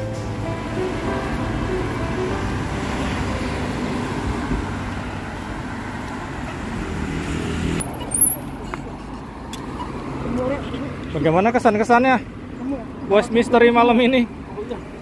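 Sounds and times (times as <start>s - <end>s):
cars passing on city street: 0.0s - 15.0s.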